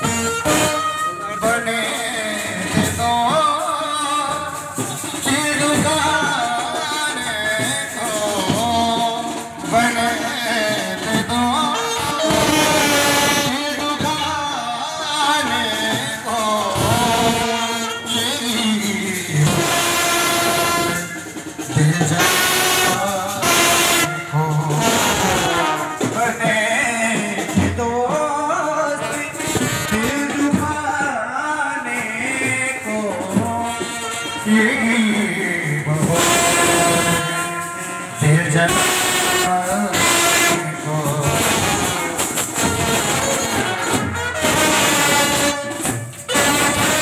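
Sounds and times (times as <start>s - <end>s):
brass band playing loudly: 0.0s - 47.0s.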